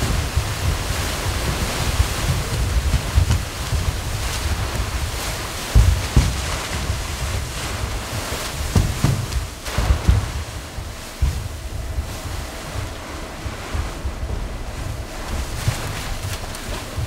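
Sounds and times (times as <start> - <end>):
paper rustling and crunching: 11.3 - 17.0.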